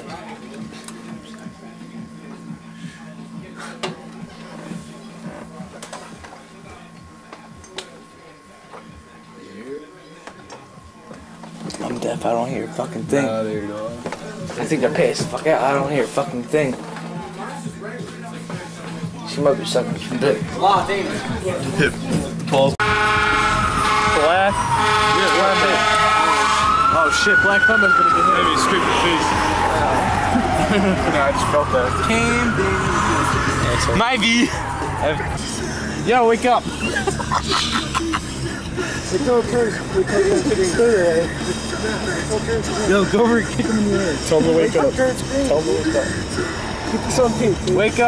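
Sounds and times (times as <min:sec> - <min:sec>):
faint background music: 0:00.0 - 0:48.0
voices: 0:00.0 - 0:48.0
blaring horn: 0:22.8 - 0:35.7
fire engine siren wailing: 0:22.8 - 0:36.4.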